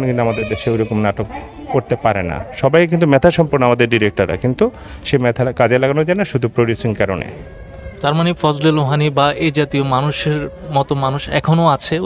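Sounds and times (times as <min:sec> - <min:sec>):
man speaking: 0:00.0 - 0:07.4, 0:08.0 - 0:12.0.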